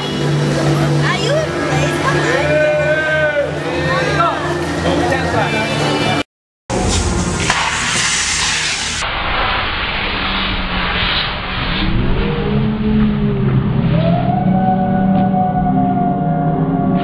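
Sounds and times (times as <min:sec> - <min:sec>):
low droning tones: 0:00.0 - 0:07.4, 0:09.0 - 0:17.0
large fire burning: 0:06.8 - 0:16.1.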